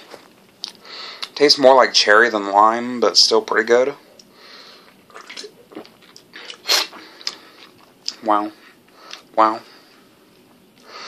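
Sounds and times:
sipping and swallowing: 4.9 - 8.2.

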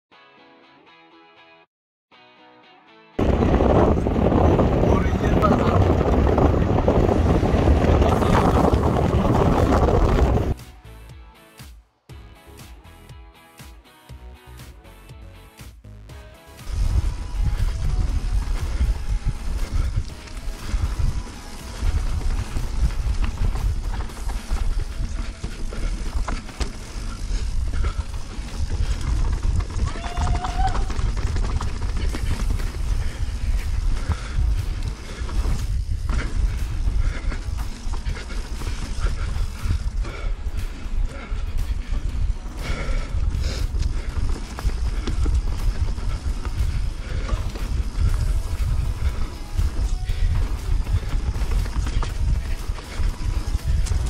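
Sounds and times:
bike tyre and frame rattle: 3.2 - 10.6, 16.6 - 54.0
wind buffeting camera: 3.2 - 10.6, 16.7 - 54.0.

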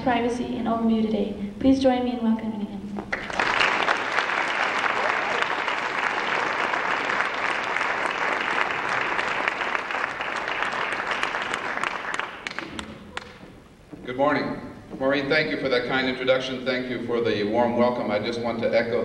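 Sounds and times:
audience applauding: 3.1 - 13.4.

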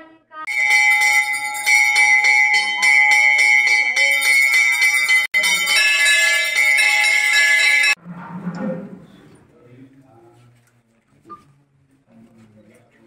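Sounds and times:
temple bells ringing rapidly: 0.5 - 8.0.

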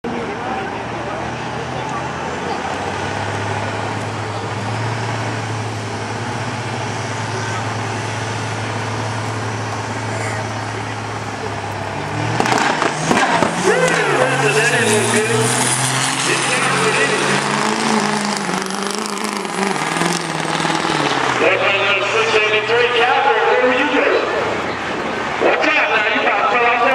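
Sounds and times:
diesel pickup engine droning: 0.0 - 26.9
nitrous backfire bang: 12.2 - 16.0.

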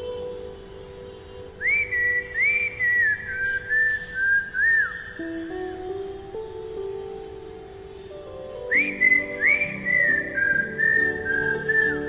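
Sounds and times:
music with slow low notes: 0.0 - 12.0
person whistling a tune: 1.6 - 5.3, 8.7 - 12.0.

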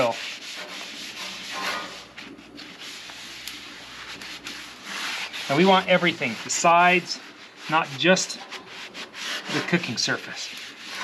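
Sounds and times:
paper towel scrubbing griddle: 0.0 - 11.0.

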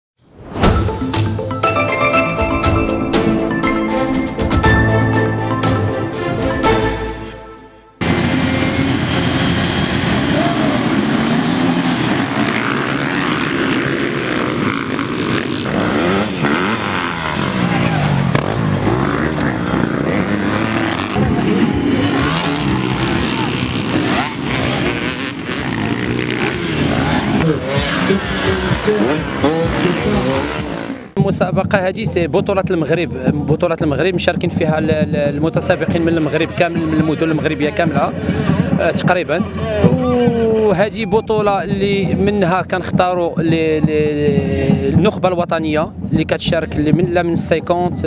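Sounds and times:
dirt bike engines revving: 8.0 - 31.2, 34.5 - 45.0.

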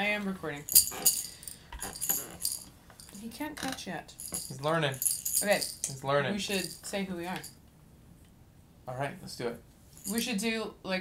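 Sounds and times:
baby rattle shaking: 0.6 - 3.2, 4.2 - 7.5, 10.0 - 10.2.

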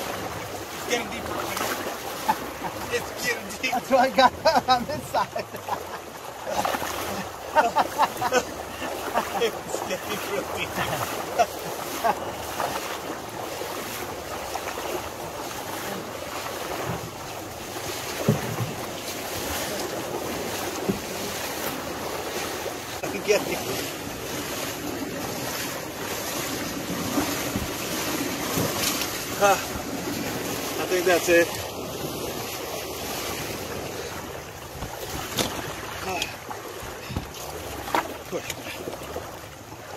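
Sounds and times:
river water rushing and splashing: 0.0 - 39.9
wooden canoe pushed through water: 0.0 - 39.9
sharp splashes or knocks: 10.0 - 31.6, 34.7 - 39.3.

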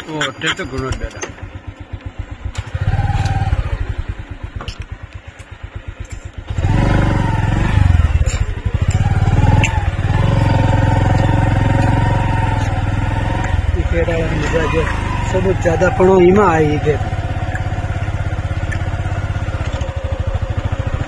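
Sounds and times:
motorcycle engine running: 0.0 - 21.0.

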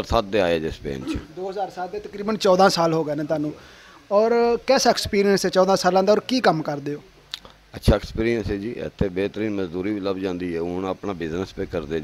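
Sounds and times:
man talking: 0.0 - 7.1, 7.7 - 12.0.

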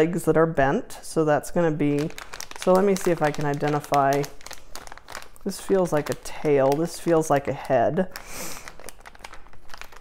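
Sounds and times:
plastic bag crinkling: 1.8 - 10.0.

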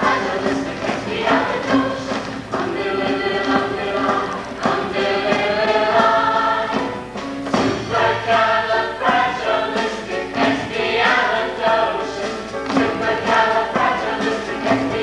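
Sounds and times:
choir singing in harmony: 0.0 - 15.0.

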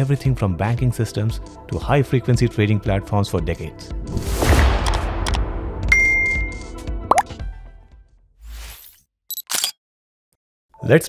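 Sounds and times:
quick upward pop: 7.1 - 7.4.

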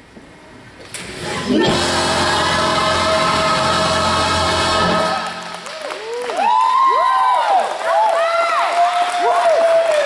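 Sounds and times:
choir and band sustained chord: 1.2 - 5.8.

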